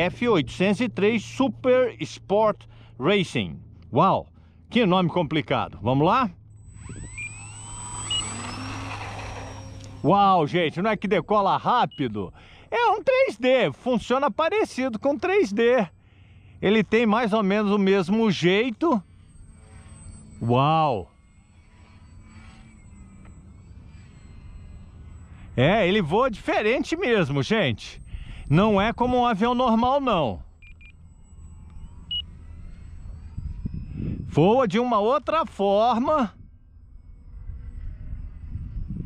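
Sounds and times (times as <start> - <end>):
electric motor and propeller whine: 0.0 - 39.0
low rumbling background: 0.0 - 39.0.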